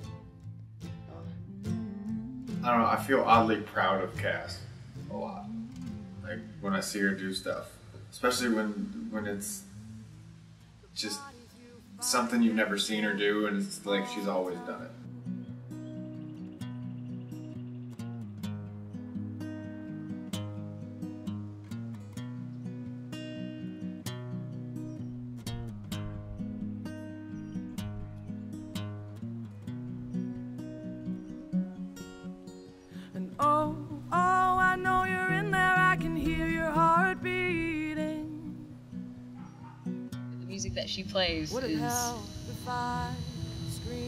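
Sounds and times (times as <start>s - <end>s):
acoustic guitar playing: 0.0s - 44.0s
woman singing: 5.5s - 6.0s, 11.0s - 12.6s, 13.8s - 15.4s, 33.0s - 38.8s, 41.5s - 44.0s.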